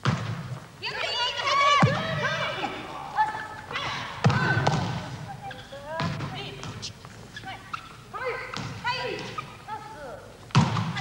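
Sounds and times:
players shouting: 0:00.8 - 0:05.4
volleyballs struck hard: 0:03.8 - 0:05.2, 0:10.5 - 0:11.0.

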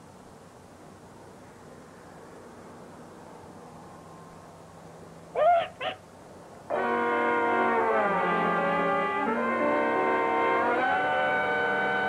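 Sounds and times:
parrot squawking: 0:05.4 - 0:06.0
brass instruments held chord: 0:06.7 - 0:12.0.

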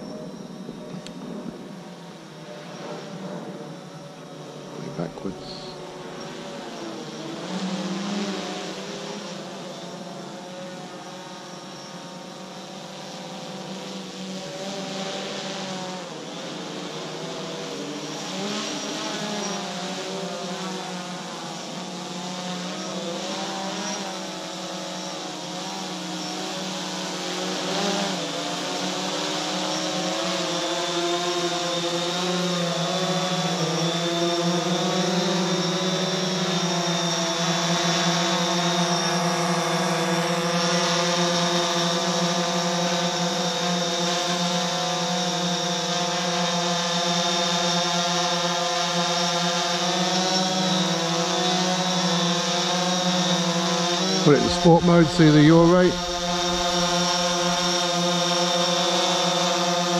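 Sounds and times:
drone propellers buzzing: 0:00.0 - 0:46.4, 0:48.7 - 0:59.9.

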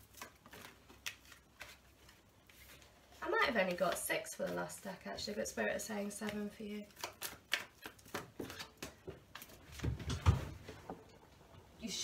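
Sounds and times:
cards being shuffled by hand: 0:00.0 - 0:05.4, 0:06.1 - 0:10.2.

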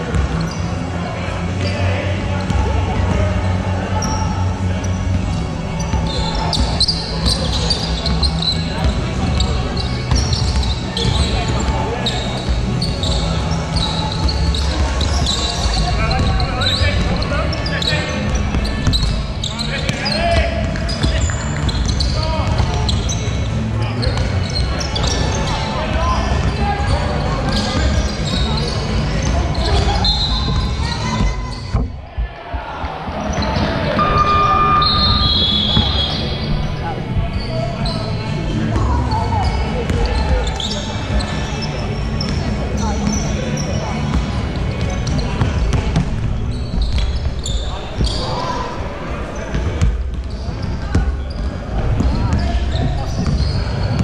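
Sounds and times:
players shouting: 0:32.0 - 0:38.2
short high squeaks: 0:34.0 - 0:36.6.

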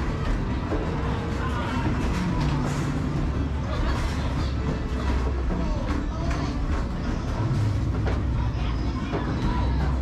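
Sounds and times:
arcade noise: 0:00.0 - 0:10.0
voices: 0:00.9 - 0:10.0.

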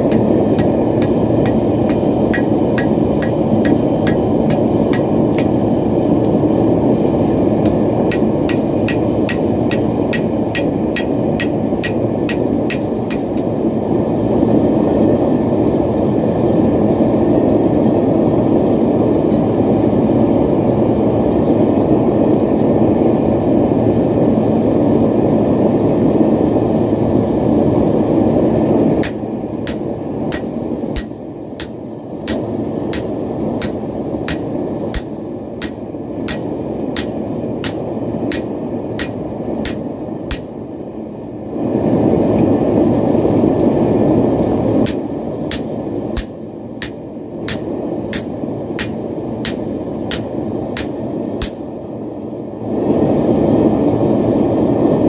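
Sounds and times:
hammer striking steel on anvil: 0:00.0 - 0:05.9, 0:07.6 - 0:13.5, 0:29.0 - 0:40.6, 0:44.8 - 0:51.7.

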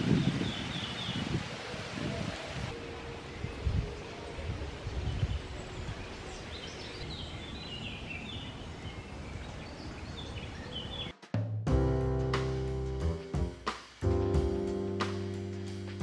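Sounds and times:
leaves rustling: 0:00.0 - 0:11.1
wind rumbling on microphone: 0:00.0 - 0:11.1
songbird twittering: 0:05.0 - 0:11.1.

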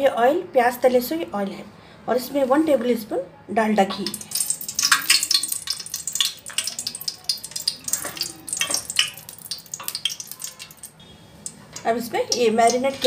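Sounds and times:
oil sizzling and crackling in a pot: 0:03.9 - 0:13.0.

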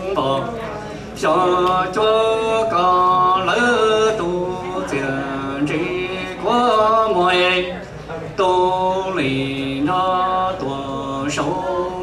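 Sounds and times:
man chanting into a microphone: 0:00.0 - 0:07.8, 0:08.4 - 0:12.0.

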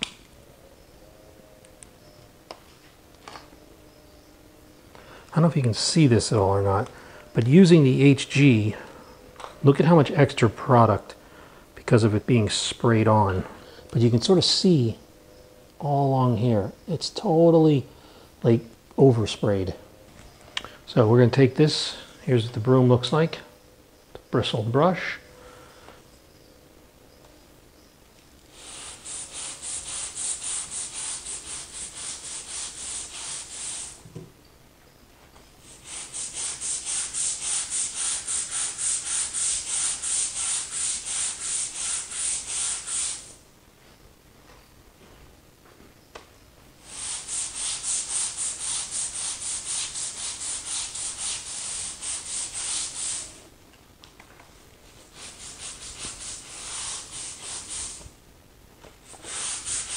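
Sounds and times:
brush scrubbing tile grout: 0:28.6 - 0:34.0, 0:35.7 - 0:43.3, 0:46.9 - 0:53.4, 0:54.9 - 0:58.1, 0:59.1 - 0:59.9.

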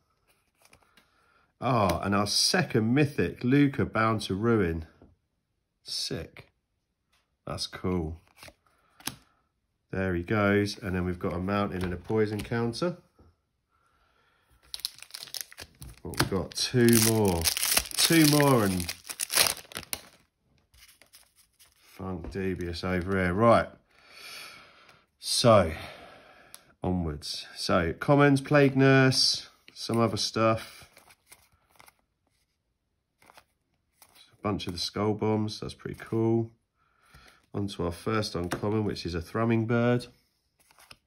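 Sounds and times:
trading cards rustling: 0:10.6 - 0:12.9, 0:14.6 - 0:23.5, 0:30.9 - 0:32.6, 0:33.2 - 0:34.7, 0:40.6 - 0:41.0
plastic wrappers crinkling: 0:14.6 - 0:21.8.

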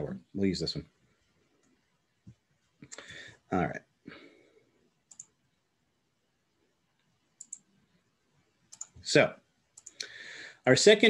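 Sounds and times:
faint computer clicks: 0:05.0 - 0:05.4, 0:07.0 - 0:07.7, 0:08.7 - 0:09.1, 0:09.7 - 0:10.2.

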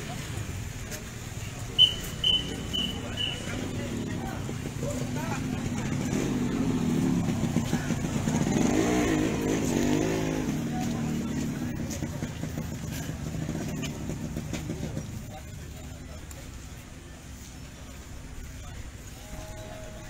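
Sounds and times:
vehicle engine passing by: 0:01.8 - 0:16.3.

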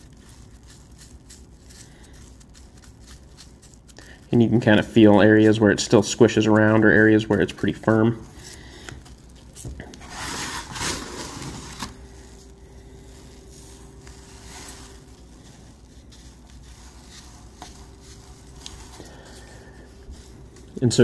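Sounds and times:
faint handling: 0:02.1 - 0:21.0.

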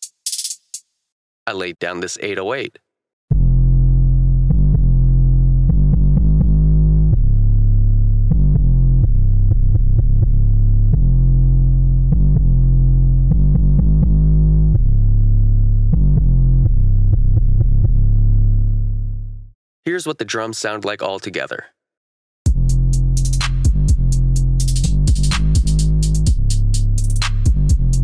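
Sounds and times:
deep bass line: 0:03.3 - 0:19.5, 0:22.5 - 0:28.0.

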